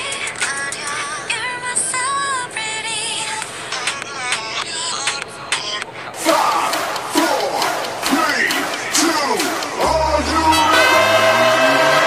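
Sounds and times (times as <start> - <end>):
crowd shouting: 6.2 - 12.0.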